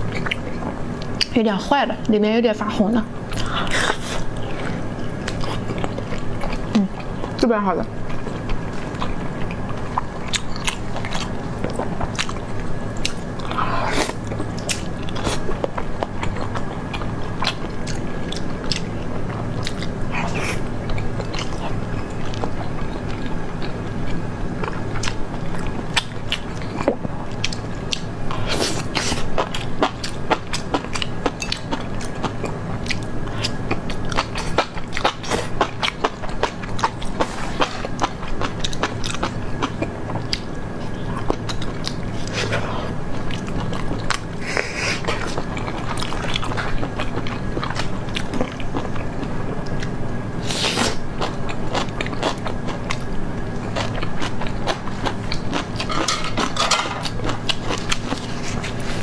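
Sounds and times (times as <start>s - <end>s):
person chewing food: 0.0s - 1.3s, 3.3s - 7.4s, 8.0s - 59.0s
faint steady hum: 0.0s - 59.0s.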